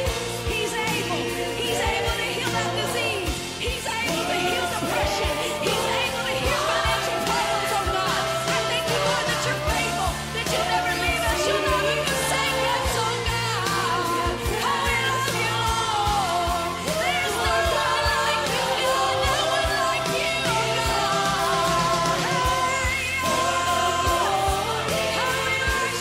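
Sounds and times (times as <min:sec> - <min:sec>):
band playing: 0:00.0 - 0:26.0.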